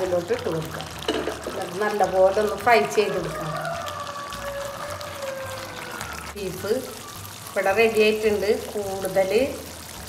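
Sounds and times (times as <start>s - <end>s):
background music: 0.0s - 10.0s
gravy crackling in frying pan: 0.0s - 10.0s.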